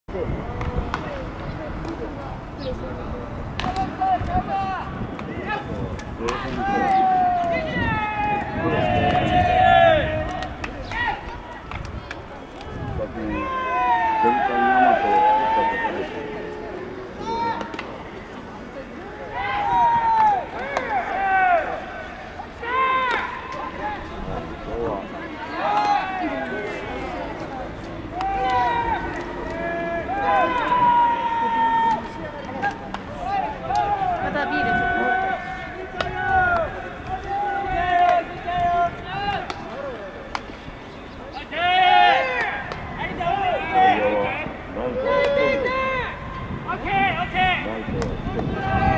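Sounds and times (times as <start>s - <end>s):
players shouting long calls: 6.3s - 11.7s, 12.4s - 40.4s, 41.2s - 48.9s.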